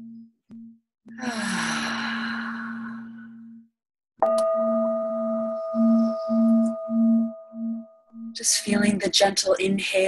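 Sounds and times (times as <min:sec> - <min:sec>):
singing bowl ringing: 0:04.2 - 0:08.6.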